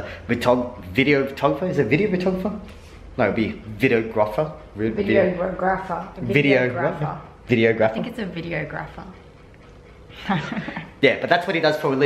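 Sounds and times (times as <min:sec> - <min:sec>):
person laughing: 0:10.2 - 0:11.0.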